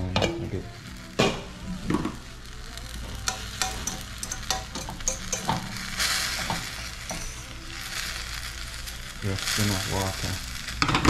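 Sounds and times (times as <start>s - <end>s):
vegetables sizzling in frying pan: 0.0s - 11.0s
fork clicking against pan: 3.3s - 5.6s.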